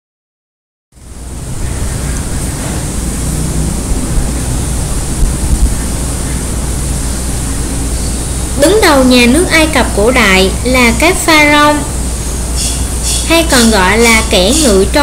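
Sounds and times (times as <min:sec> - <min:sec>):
microphone hiss and hum: 0:01.0 - 0:15.0
woman's voice: 0:08.6 - 0:11.9, 0:13.3 - 0:15.0.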